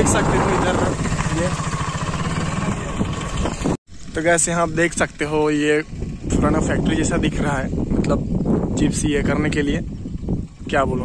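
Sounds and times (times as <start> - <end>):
motorcycle engine running: 0.0 - 11.0
wind rushing over microphone: 0.0 - 11.0.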